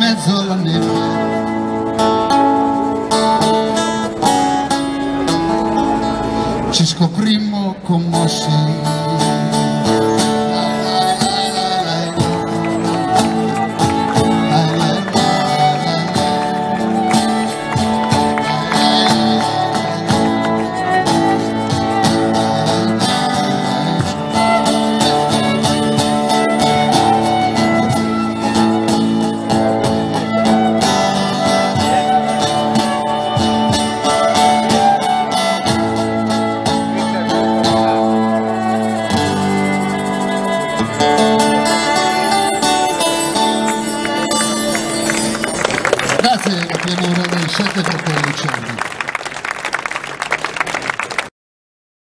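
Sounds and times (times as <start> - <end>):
violin melody: 0.0 - 6.9, 8.4 - 47.9
strummed electric guitars: 0.0 - 48.8.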